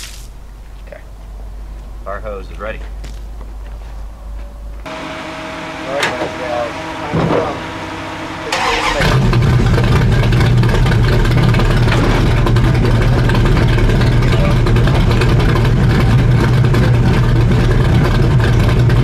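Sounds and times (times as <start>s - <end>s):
car engine cranking and starting: 4.9s - 19.0s.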